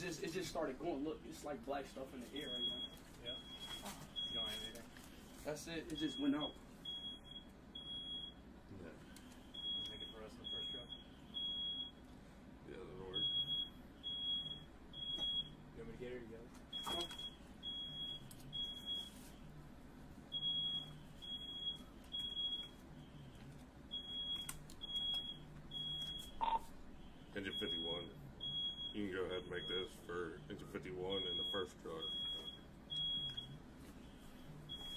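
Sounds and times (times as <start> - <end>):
smoke alarm beeping: 2.0 - 4.8, 5.9 - 8.4, 9.5 - 12.0, 13.1 - 15.6, 16.7 - 19.5, 20.3 - 23.3, 23.9 - 33.6, 34.3 - 34.9.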